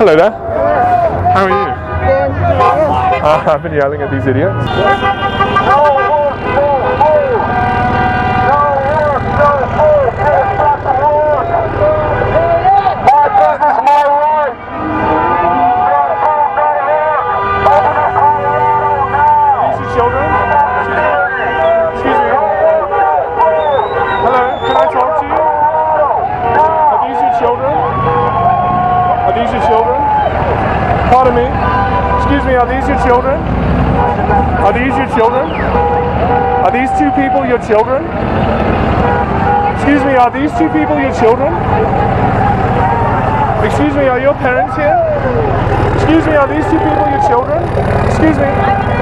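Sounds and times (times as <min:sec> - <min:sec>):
car horns honking: 0:00.0 - 0:49.0
crowd shouting: 0:00.0 - 0:49.0
traffic: 0:00.0 - 0:49.0.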